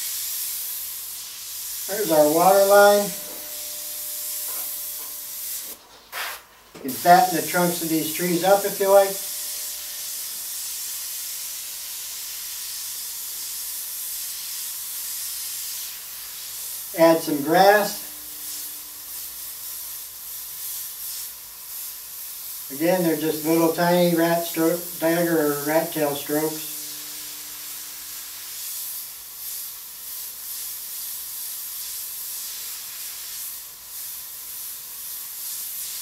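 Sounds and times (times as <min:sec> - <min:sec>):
airbrush spraying hiss: 0:00.0 - 0:36.0
faint steady hum: 0:01.2 - 0:06.0, 0:06.7 - 0:11.1.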